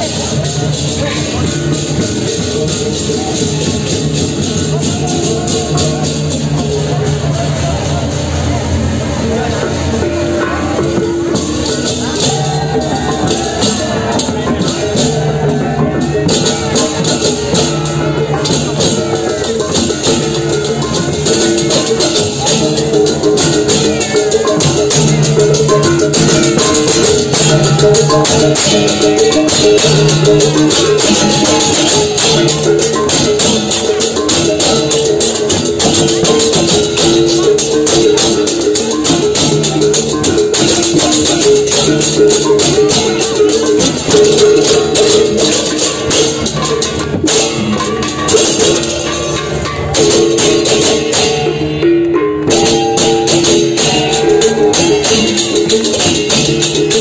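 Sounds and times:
drums: 0.0 - 57.0
hand cymbals clashing: 0.0 - 57.0
pitched gong melody: 9.6 - 57.0.

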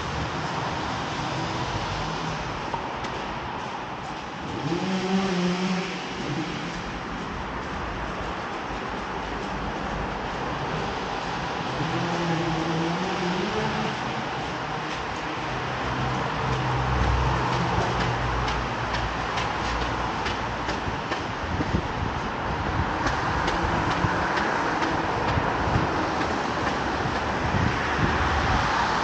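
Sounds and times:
motor vehicles passing: 0.0 - 29.0
road traffic noise in underpass: 0.0 - 29.0.

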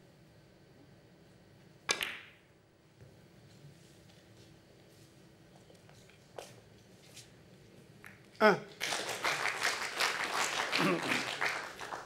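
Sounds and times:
cue striking billiard ball: 1.9 - 2.5.

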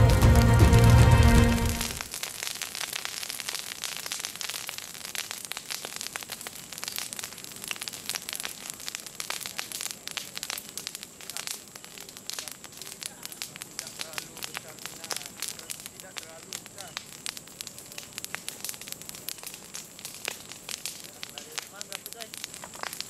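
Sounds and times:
vegetation fire crackling: 0.0 - 23.0.

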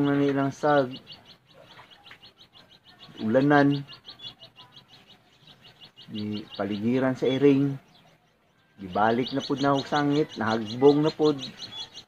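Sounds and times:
sparrow chirping: 0.0 - 12.0.

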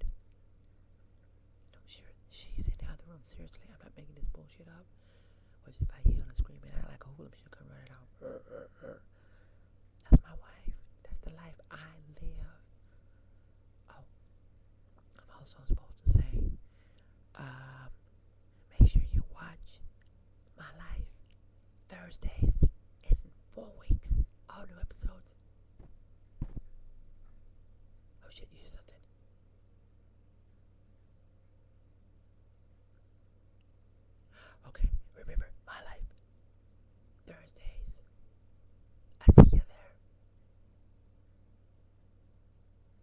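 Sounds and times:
woman whispering: 1.7 - 4.9, 5.6 - 9.1, 10.0 - 12.7, 13.9 - 14.1, 15.1 - 16.6, 17.4 - 18.0, 18.6 - 19.9, 20.6 - 21.2, 21.9 - 25.4, 28.2 - 29.1, 34.4 - 36.1, 37.2 - 38.0, 39.2 - 40.0
loud low thump: 25.8 - 26.7.

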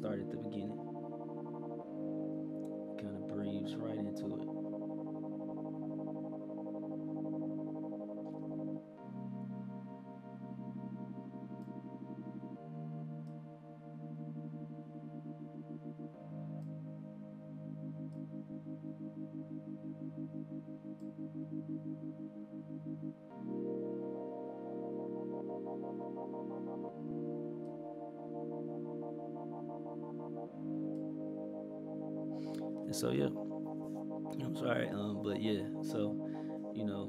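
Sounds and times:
synth playing sustained chords: 0.0 - 37.0.

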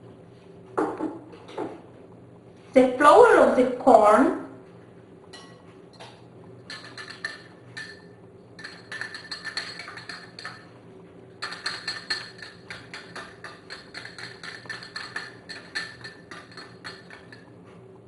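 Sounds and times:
whisk clinking against glass bowl: 5.3 - 5.6, 6.7 - 10.7, 11.4 - 17.5.

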